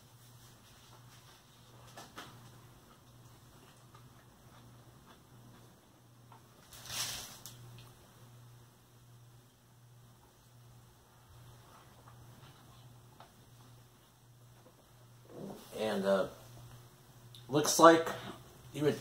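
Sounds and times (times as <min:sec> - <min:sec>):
steady low hum: 0:00.0 - 0:19.0
man chewing wetly: 0:01.8 - 0:06.5.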